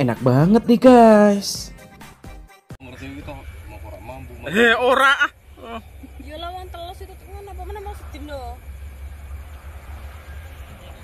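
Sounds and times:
steady low rumble: 0:02.8 - 0:11.0.

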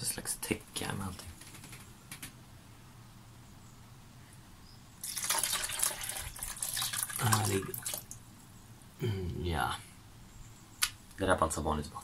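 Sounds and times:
water splashing into bucket: 0:05.0 - 0:08.2.

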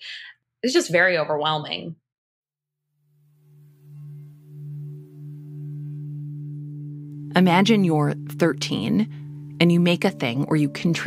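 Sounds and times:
low musical drone: 0:03.1 - 0:11.0.

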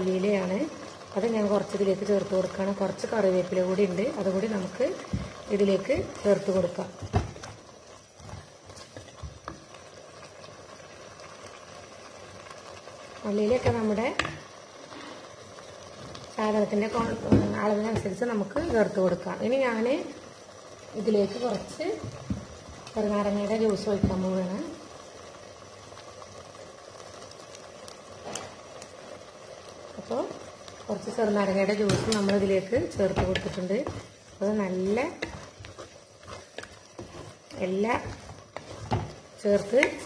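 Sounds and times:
curry bubbling in a pot: 0:00.0 - 0:40.0
simmering sauce hissing: 0:00.0 - 0:40.0.

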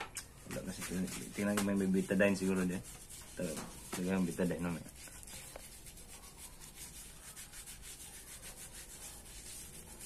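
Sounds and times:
hand rubbing hair: 0:00.2 - 0:10.0.

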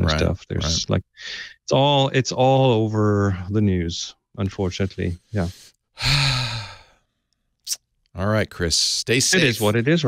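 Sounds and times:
man sighing: 0:06.0 - 0:07.0.

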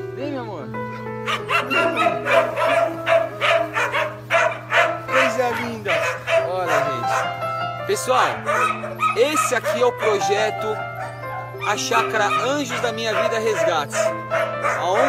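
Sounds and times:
background music with held notes: 0:00.0 - 0:15.0
puppy yipping and whining: 0:00.9 - 0:15.0.

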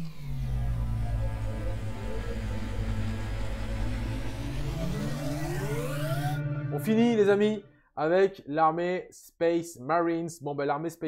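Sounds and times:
deep low drone: 0:00.0 - 0:07.2
falling tone: 0:00.0 - 0:07.7
upward sweeping tone: 0:00.0 - 0:07.8.

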